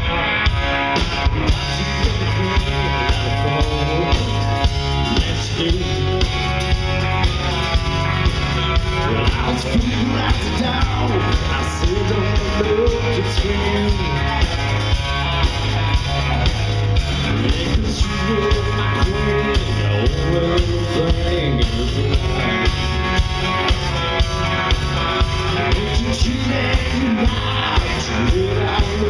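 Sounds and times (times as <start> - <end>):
acoustic guitars strummed: 0.0 - 29.0
drum kit with cymbals: 0.0 - 29.0.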